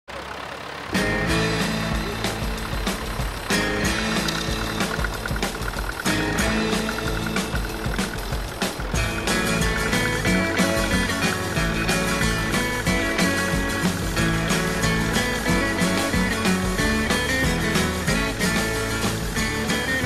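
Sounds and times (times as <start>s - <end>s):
background music with steady beat: 1.0s - 20.0s.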